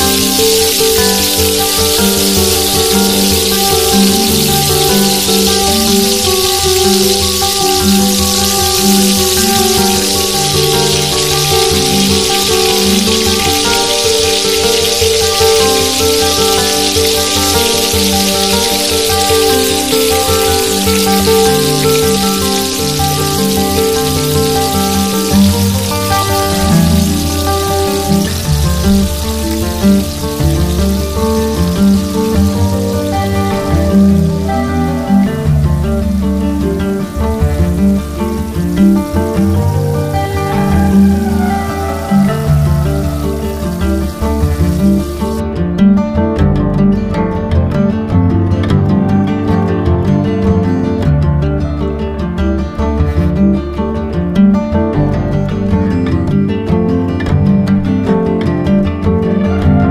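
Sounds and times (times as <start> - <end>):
food sizzling in oil: 0.0 - 45.4
background music: 0.0 - 59.9.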